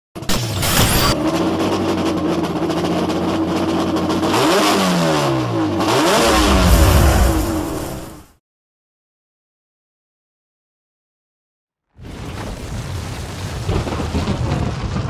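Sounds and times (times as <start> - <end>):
car engine revving: 0.9 - 8.3.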